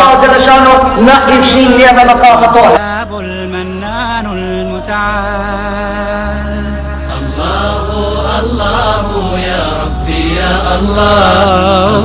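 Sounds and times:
low drone notes: 0.0 - 12.0.

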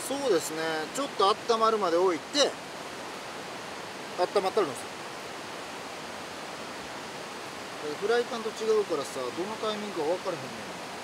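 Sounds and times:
rushing outdoor background noise: 0.0 - 11.0.

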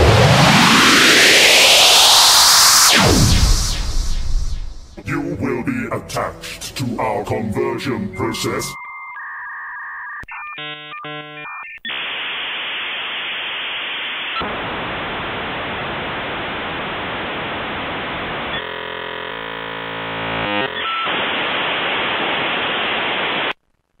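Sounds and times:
harsh buzzing tone: 10.3 - 23.9
loud static hiss: 11.9 - 23.6.

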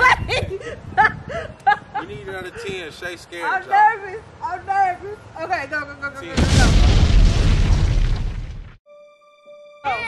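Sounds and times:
explosion boom: 6.3 - 8.8.

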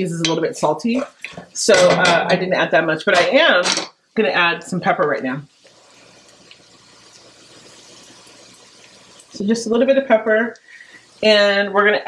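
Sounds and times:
rice sizzling in a pot: 0.0 - 12.0.

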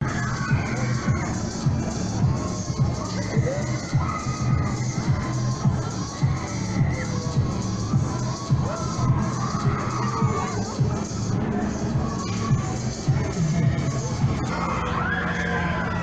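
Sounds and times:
loud funfair music: 0.0 - 16.0
riders shouting and screaming: 0.0 - 16.0.

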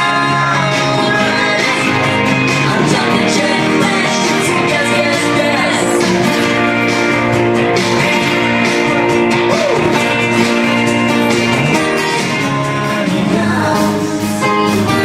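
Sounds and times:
person singing: 0.0 - 6.6, 9.4 - 15.0
acoustic guitar: 0.0 - 15.0.

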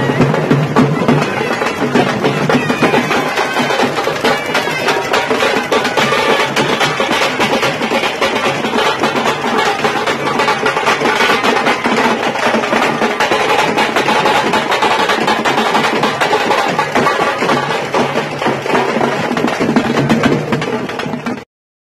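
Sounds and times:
frame drums played with sticks: 0.0 - 21.4.

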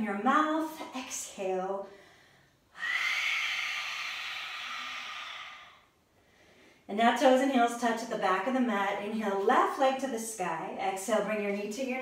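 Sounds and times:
woman exhaling: 1.9 - 6.0.

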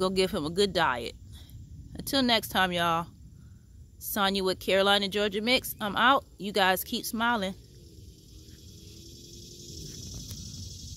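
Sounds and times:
high-pitched insect chorus: 0.0 - 10.9.

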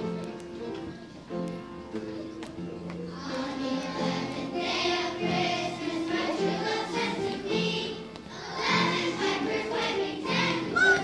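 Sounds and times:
musical accompaniment: 0.0 - 11.0
children singing: 3.1 - 11.0.

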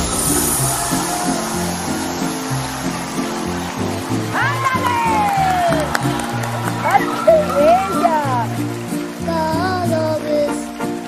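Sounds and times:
instrumental band music: 0.0 - 11.0.

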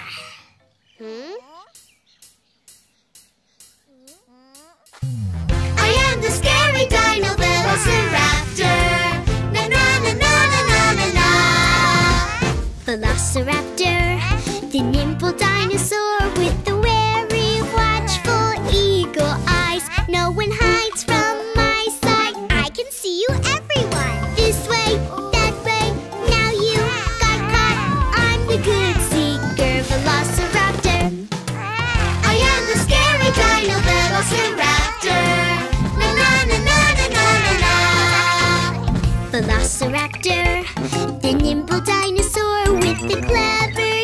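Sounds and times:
cartoon character vocal sounds: 0.0 - 1.8, 3.8 - 5.2, 17.7 - 18.7, 26.2 - 35.4, 39.4 - 44.0
cartoon voice singing: 1.0 - 1.7, 3.9 - 5.1, 7.0 - 13.2, 14.0 - 24.6, 25.4 - 38.8, 39.4 - 44.0
bouncy backing music: 1.0 - 44.0.

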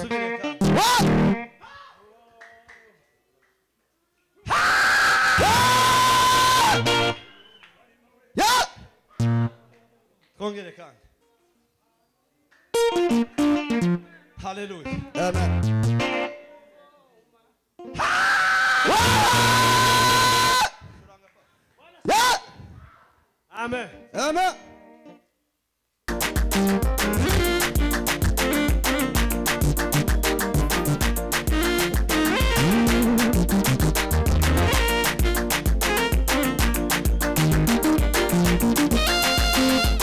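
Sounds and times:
person shouting into microphone: 0.0 - 2.1, 8.4 - 9.3, 17.9 - 20.8, 22.0 - 23.1.

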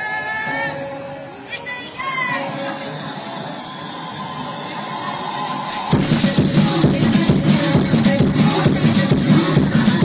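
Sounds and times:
electronic dance music: 0.0 - 10.0.

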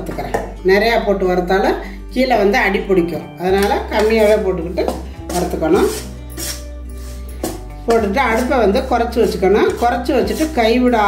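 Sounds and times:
metal spatula scraping a pan: 4.2 - 11.0.

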